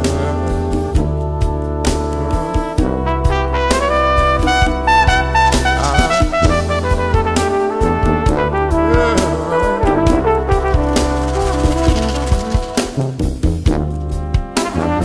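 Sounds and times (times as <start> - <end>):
drum kit: 0.0 - 15.0
trumpets and trombones: 0.0 - 15.0
low bass line: 8.0 - 13.1.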